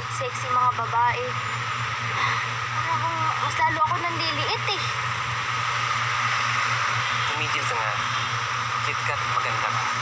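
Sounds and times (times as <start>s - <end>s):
low hum: 0.0s - 10.0s
static-like hiss: 0.0s - 10.0s.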